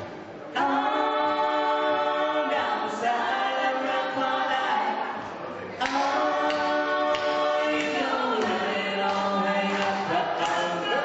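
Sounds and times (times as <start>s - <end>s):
voices singing in harmony: 0.5s - 11.0s.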